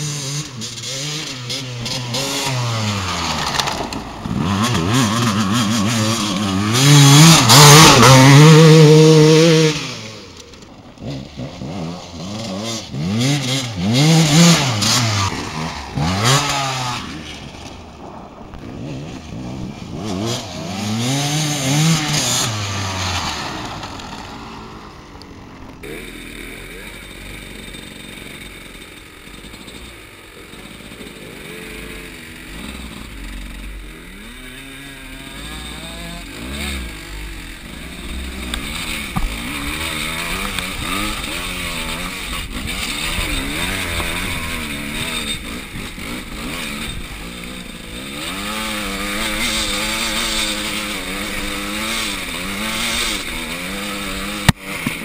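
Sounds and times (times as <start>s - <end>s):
two-stroke motorcycle engine revving: 0.0s - 55.0s.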